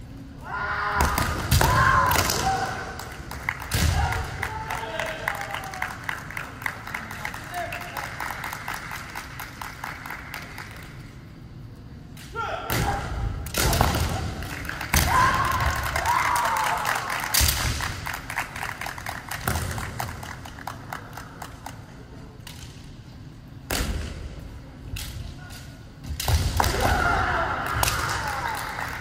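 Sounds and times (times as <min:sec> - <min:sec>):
people shouting: 0:00.4 - 0:03.0, 0:03.8 - 0:05.8, 0:15.0 - 0:17.1, 0:26.6 - 0:29.0.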